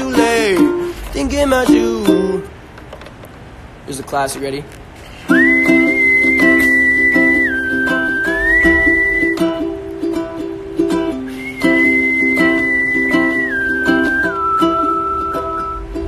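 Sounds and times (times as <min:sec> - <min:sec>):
ukulele strumming: 0:00.0 - 0:03.7, 0:04.8 - 0:16.0
man whistling a slow tune: 0:05.3 - 0:09.6, 0:11.1 - 0:16.0.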